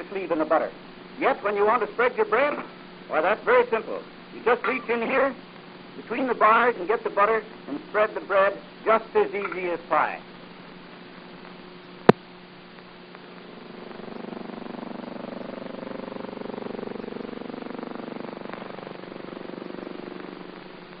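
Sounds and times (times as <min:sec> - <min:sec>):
droning hum with rapid flutter: 0:00.0 - 0:21.0
faint steady hum: 0:00.0 - 0:21.0.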